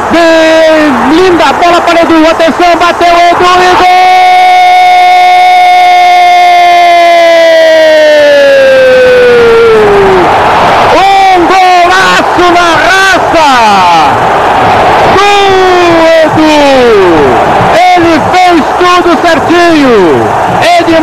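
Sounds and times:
commentator's long goal shout: 0:00.0 - 0:14.2, 0:15.1 - 0:21.0
excited shouts: 0:00.0 - 0:21.0
stadium crowd noise: 0:00.0 - 0:21.0.

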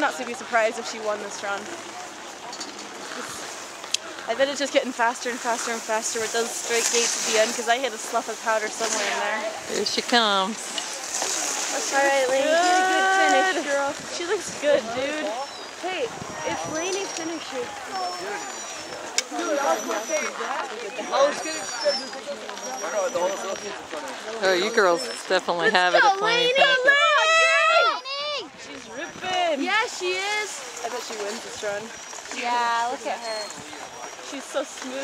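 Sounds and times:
faint voices: 0:00.0 - 0:35.0
people talking and exclaiming: 0:00.0 - 0:35.0.

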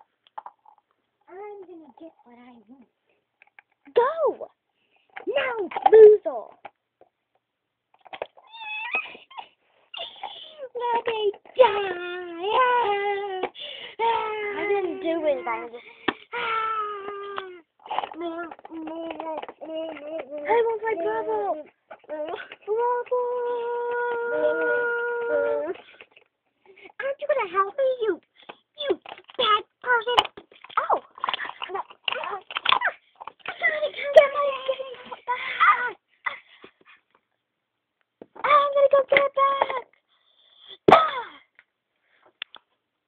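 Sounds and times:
person talking: 0:10.3 - 0:25.8, 0:28.8 - 0:36.0
child wailing: 0:23.3 - 0:25.8.

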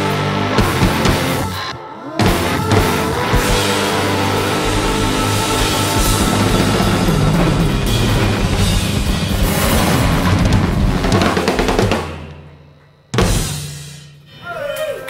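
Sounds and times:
acoustic drum kits playing: 0:00.0 - 0:14.0.

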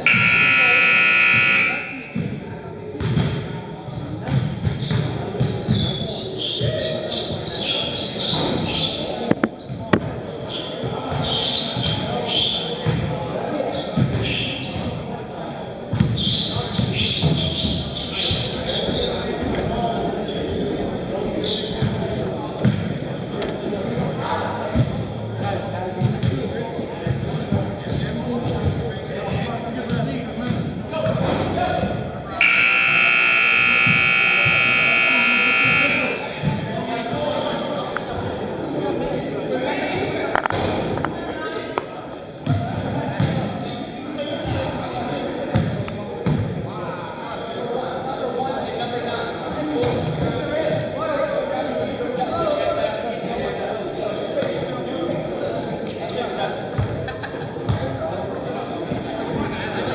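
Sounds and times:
scoreboard buzzer: 0:00.0 - 0:02.3, 0:32.4 - 0:36.4
voices echoing: 0:00.0 - 0:59.9.

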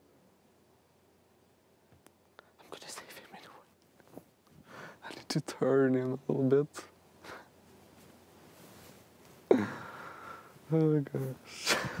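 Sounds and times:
faint whispering: 0:02.4 - 0:03.8, 0:05.0 - 0:05.6.

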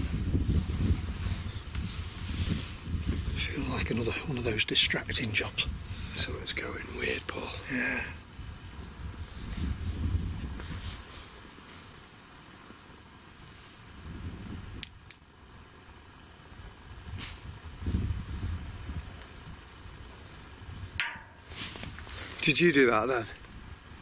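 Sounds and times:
sharp knocks: 0:21.0 - 0:21.5.

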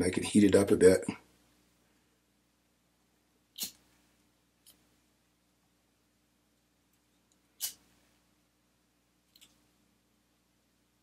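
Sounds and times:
cigarette lighter rasp: 0:03.6 - 0:03.8, 0:07.6 - 0:07.8.

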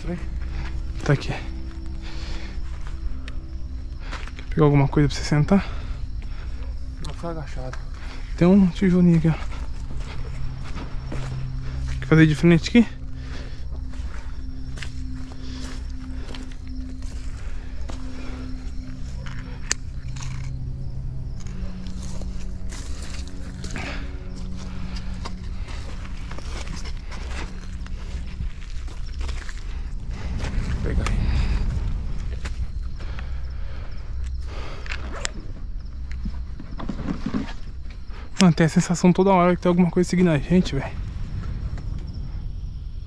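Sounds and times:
low rumble: 0:00.0 - 0:36.7, 0:39.2 - 0:43.0
low sustained background music: 0:00.0 - 0:43.0.

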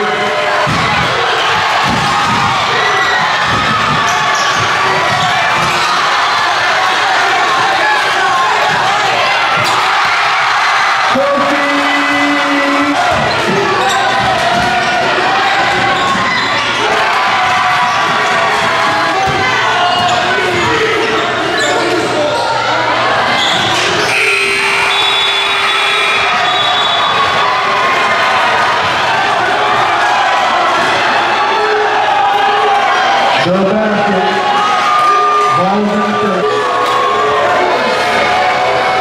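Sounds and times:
crowd shouting and cheering: 0:00.0 - 0:39.0.

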